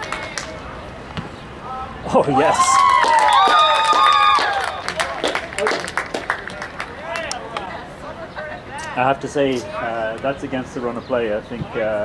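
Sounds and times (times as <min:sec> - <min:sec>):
distant shouts of players: 0:01.6 - 0:05.4.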